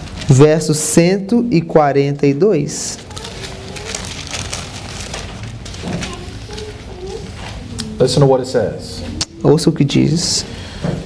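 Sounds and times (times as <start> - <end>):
paper pages rustling: 0.0 - 0.7, 2.9 - 7.7.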